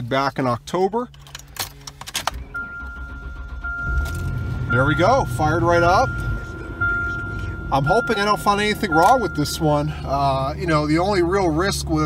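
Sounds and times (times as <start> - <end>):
car engine cranking and starting: 0.0 - 12.0
keys jangling in ignition: 1.0 - 4.4
high warning tone: 2.4 - 11.6.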